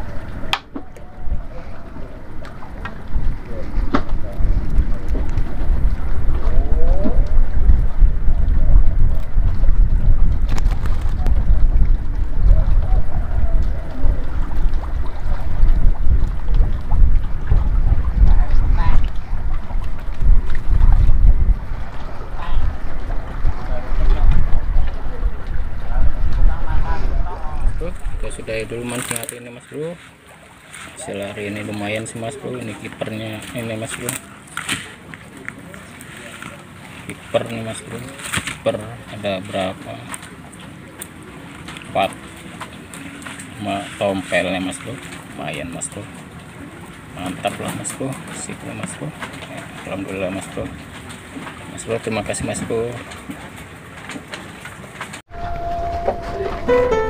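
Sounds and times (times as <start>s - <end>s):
faint voices: 0.0s - 9.4s, 12.2s - 15.8s, 21.8s - 30.2s
wind buffeting microphone: 0.0s - 29.0s.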